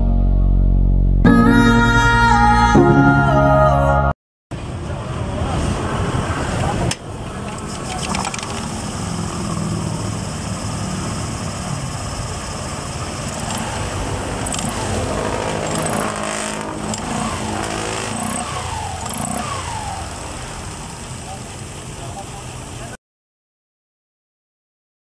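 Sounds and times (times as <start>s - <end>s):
scooter engine revving: 5.0s - 23.0s.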